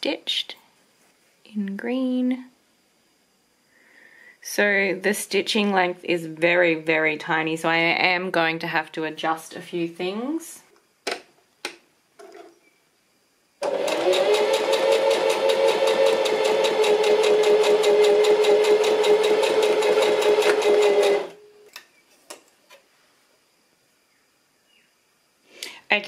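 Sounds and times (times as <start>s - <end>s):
sewing machine stitching: 13.6s - 21.4s.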